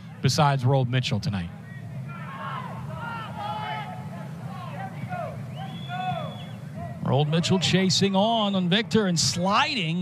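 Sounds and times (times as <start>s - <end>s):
distant voices shouting: 1.6s - 8.7s.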